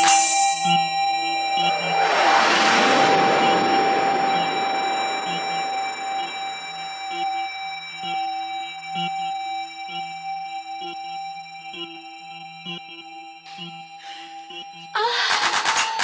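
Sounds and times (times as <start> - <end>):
noise sweep: 1.6 - 7.7
held synth tone: 1.6 - 8.0.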